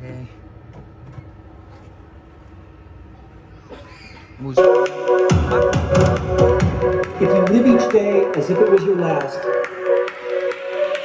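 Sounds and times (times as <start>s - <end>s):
loud music through speaker: 4.6s - 11.0s.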